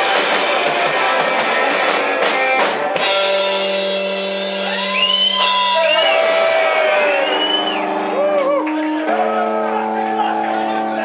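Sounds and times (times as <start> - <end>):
electric guitars ringing: 0.0 - 11.0
audience whooping: 4.5 - 10.3.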